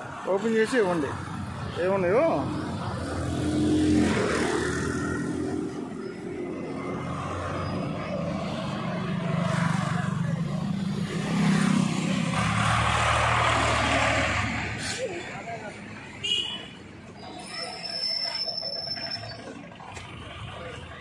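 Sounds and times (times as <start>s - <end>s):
vehicle engines running: 0.0s - 16.1s, 16.9s - 21.0s.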